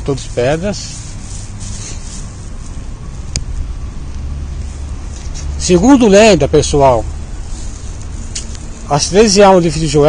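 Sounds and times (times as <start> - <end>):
low rumble with high hiss: 0.0 - 10.0.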